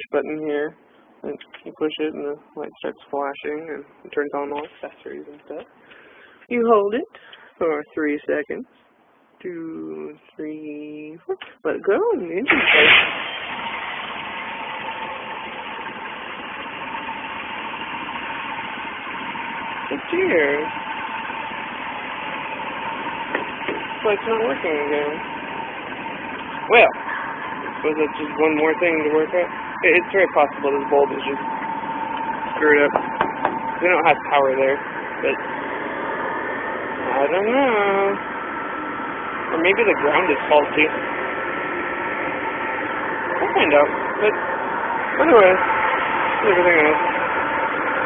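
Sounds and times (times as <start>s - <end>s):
engine idling: 12.4s - 48.0s
thin steady high tone: 14.1s - 48.0s.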